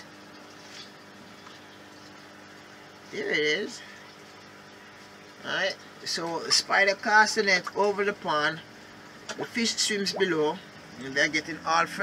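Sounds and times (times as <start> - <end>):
water hissing in pond: 0.0 - 7.0, 9.4 - 12.0.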